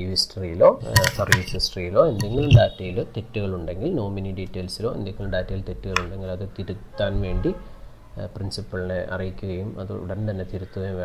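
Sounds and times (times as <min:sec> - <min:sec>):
man talking: 0:00.0 - 0:07.6.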